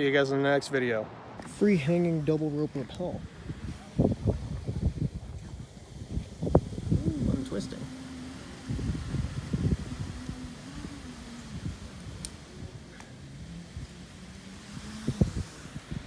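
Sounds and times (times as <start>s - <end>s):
wind buffeting microphone: 0.0s - 16.0s
low wavering hum: 3.1s - 16.0s
faint clicks: 12.2s - 13.2s.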